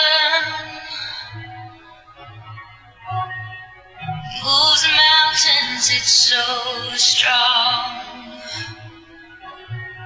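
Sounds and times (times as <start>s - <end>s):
person singing: 0.0s - 1.6s, 4.2s - 9.0s.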